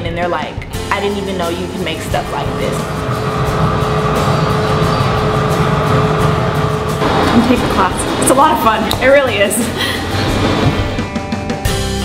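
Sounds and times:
gas furnace roaring: 0.9 - 11.3
thin steady hum: 1.6 - 10.0.

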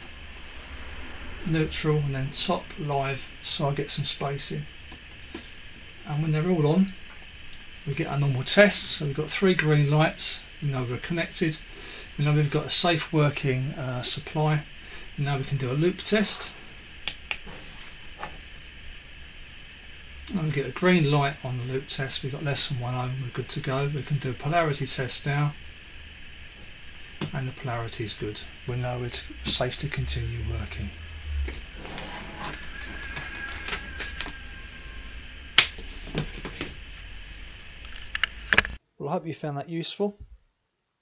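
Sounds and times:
low steady hum: 0.0 - 38.8.

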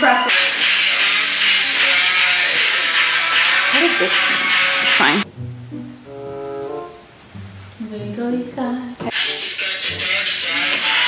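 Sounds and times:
song playing: 0.0 - 8.3, 9.1 - 11.0
low pitched melodic line: 5.2 - 8.4.

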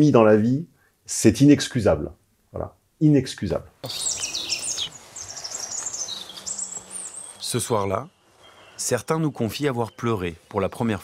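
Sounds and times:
small birds chirping: 3.8 - 11.0.

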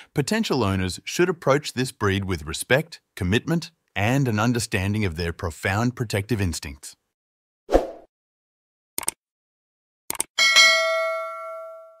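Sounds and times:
bell chime ringing: 10.4 - 12.0.

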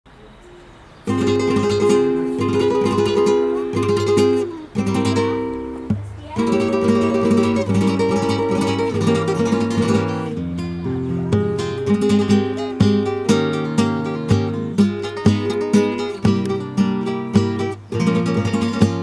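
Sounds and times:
acoustic guitar strumming: 1.0 - 19.0.

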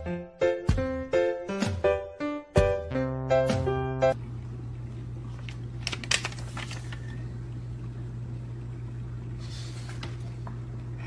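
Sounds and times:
low room hum: 4.0 - 11.0.

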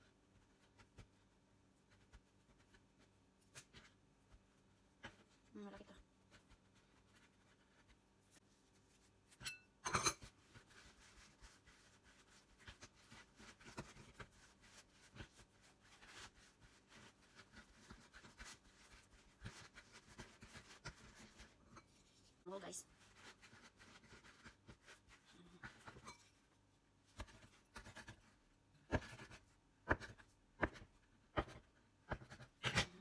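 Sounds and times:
hands patting dough: 0.0 - 9.4, 10.2 - 22.2, 22.9 - 33.0.

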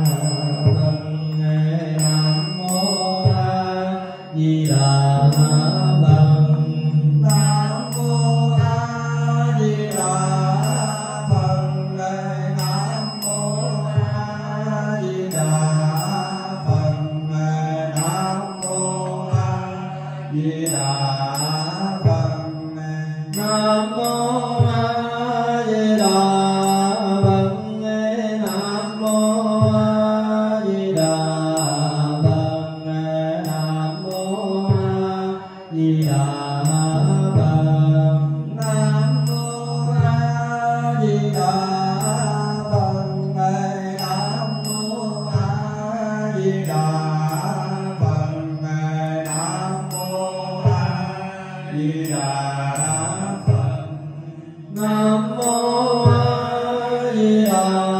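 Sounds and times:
group of voices chanting: 18.9 - 22.2.

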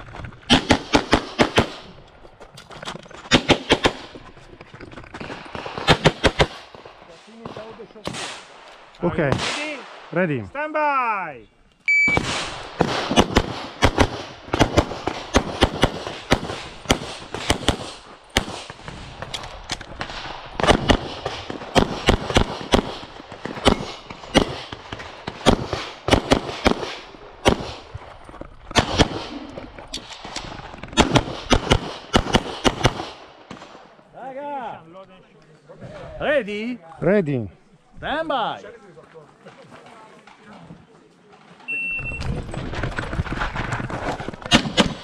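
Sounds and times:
pistol firing rapid shots: 0.5 - 1.9, 12.2 - 18.8, 20.2 - 27.8, 28.7 - 29.4, 31.0 - 33.2, 44.5 - 45.0.

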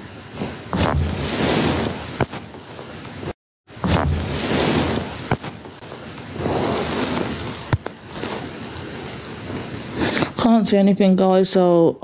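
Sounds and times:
phone microphone handling noise: 0.4 - 3.0, 3.8 - 8.6.

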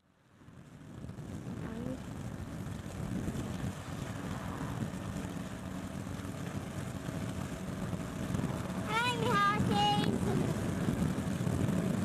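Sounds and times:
motor boat engine rumbling: 0.4 - 12.0.

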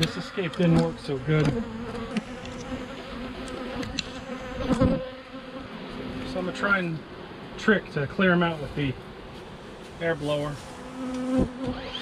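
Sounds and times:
bee buzzing close by: 0.0 - 7.6, 9.0 - 12.0
honey bees buzzing: 0.0 - 12.0.

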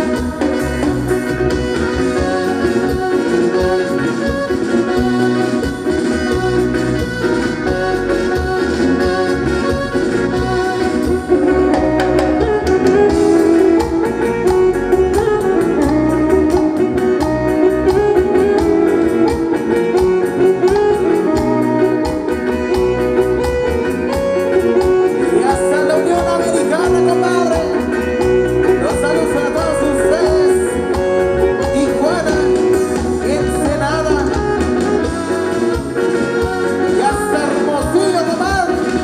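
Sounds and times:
live band dance music: 0.0 - 39.0.

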